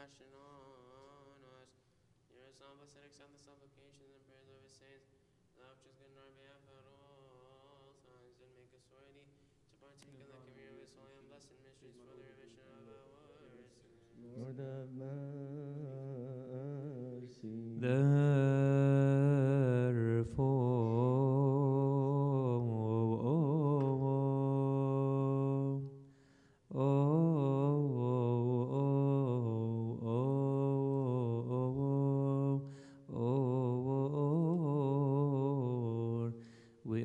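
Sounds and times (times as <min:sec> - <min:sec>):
man chanting solo: 0:12.1 - 0:26.0.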